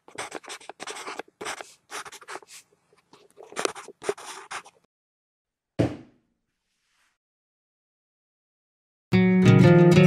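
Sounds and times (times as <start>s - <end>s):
marker pen scratching on paper: 0.0s - 4.9s.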